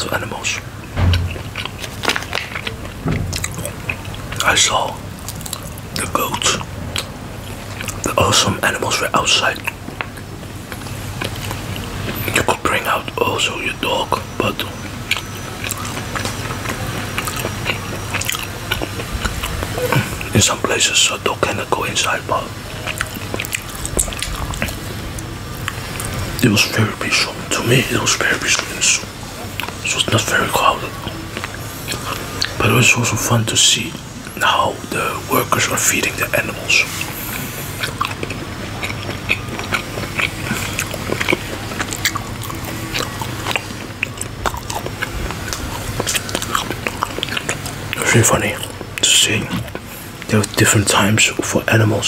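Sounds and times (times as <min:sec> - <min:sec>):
low steady rumble: 0:00.8 - 0:02.3
chewing with wet mouth clicks: 0:00.8 - 0:32.6, 0:35.7 - 0:51.5.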